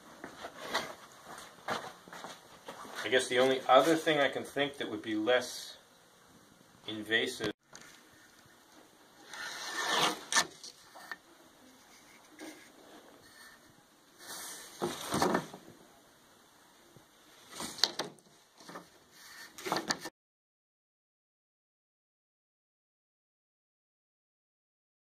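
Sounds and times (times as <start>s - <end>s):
plywood scraping on workbench: 9.3s - 11.2s.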